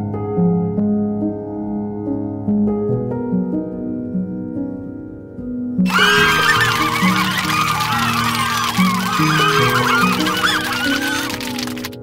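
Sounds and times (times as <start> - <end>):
chorus of bird calls: 5.9 - 12.0.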